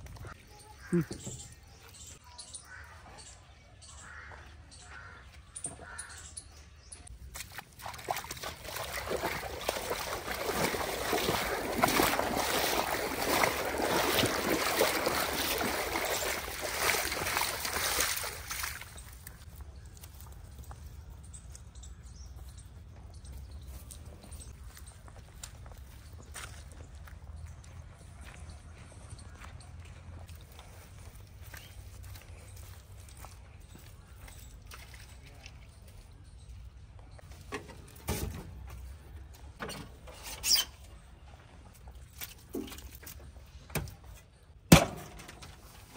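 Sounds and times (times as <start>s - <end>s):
barefoot footsteps on wet mud: 4.0s - 39.6s
bare feet splashing in water: 7.2s - 19.6s.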